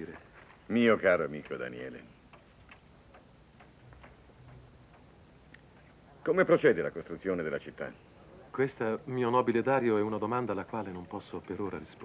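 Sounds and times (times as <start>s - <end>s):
faint regular ticks: 1.3s - 6.0s.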